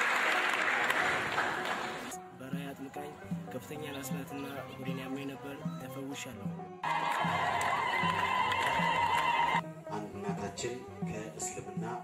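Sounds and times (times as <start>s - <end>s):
hymn music: 0.0s - 12.0s.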